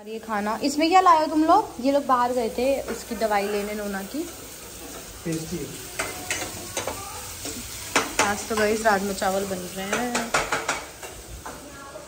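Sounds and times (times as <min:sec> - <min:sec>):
onions sizzling in a pan: 0:00.0 - 0:12.0.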